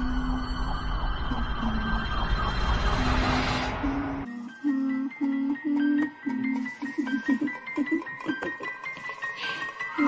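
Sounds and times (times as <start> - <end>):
noisy wavering sound effect: 0.0 - 4.3.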